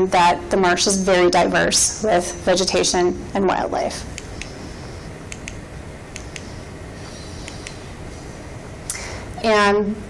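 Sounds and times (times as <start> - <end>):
room noise: 0.0 - 10.0
remote button clicks: 5.3 - 6.6, 7.4 - 7.8.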